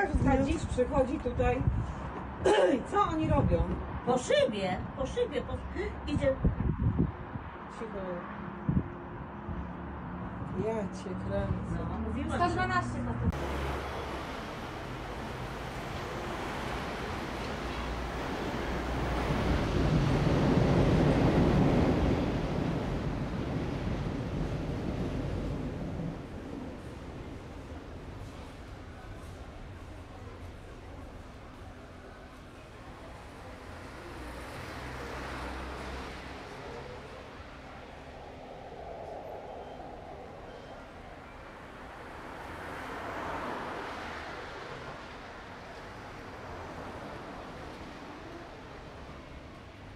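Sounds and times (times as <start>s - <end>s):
street noise: 0.0s - 49.9s.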